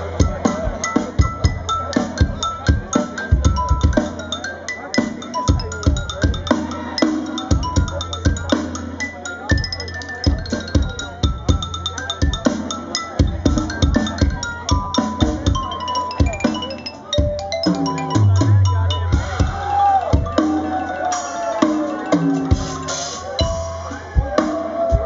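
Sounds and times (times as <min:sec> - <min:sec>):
mallets on xylophone melody: 0:00.0 - 0:25.0.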